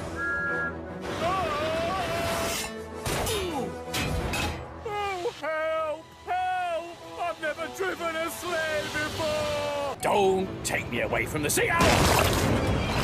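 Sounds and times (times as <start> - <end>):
cartoon background music: 0.0 - 13.0.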